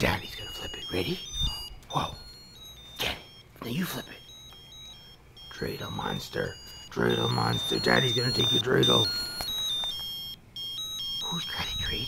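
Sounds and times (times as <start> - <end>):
tune in electronic beeps: 4.2 - 9.6.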